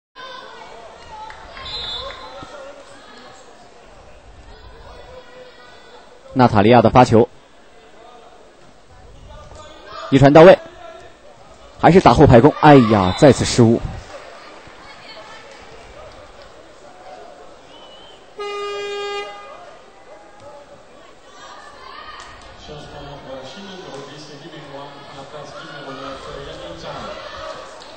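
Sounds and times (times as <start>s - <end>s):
murmur of voices: 0.2s - 27.9s.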